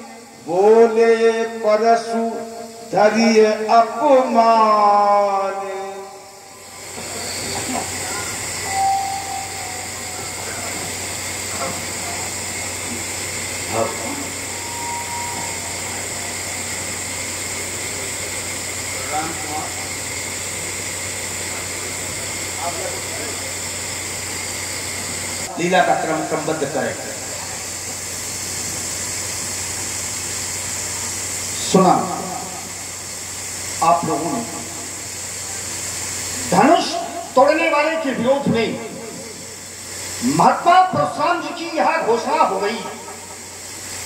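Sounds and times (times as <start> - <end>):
electrical hiss: 0.0 - 44.0
low mains hum: 0.0 - 44.0
thin high whine: 0.0 - 44.0.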